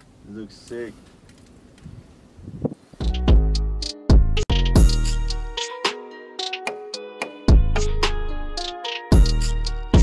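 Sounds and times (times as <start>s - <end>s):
wind rumble on microphone: 1.6s - 3.1s.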